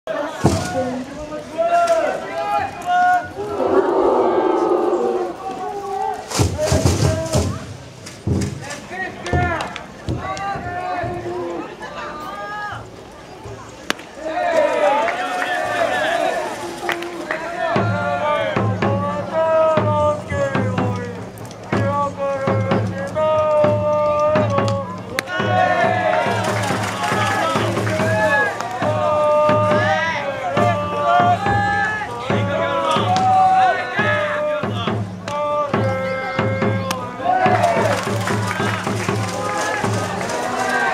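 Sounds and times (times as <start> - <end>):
crowd chanting a cheer: 0.1 - 7.6, 14.2 - 40.9
steady drum beat: 6.4 - 8.7, 17.6 - 40.9.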